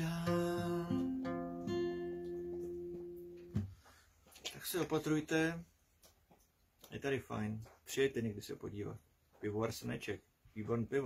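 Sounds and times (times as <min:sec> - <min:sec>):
acoustic guitar chord ringing: 0:00.0 - 0:03.7.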